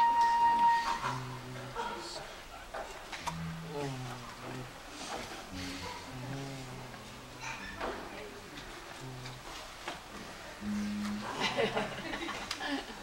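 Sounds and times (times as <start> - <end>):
low voices talking quietly: 0.8 - 13.0
song's held note: 3.3 - 4.7, 10.6 - 11.8.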